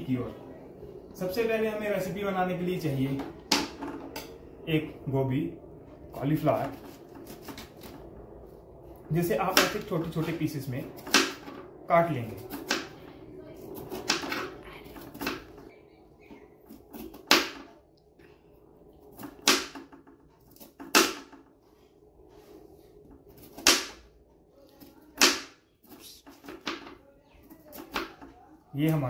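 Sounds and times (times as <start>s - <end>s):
knife chopping on cutting board: 11.0s - 11.4s.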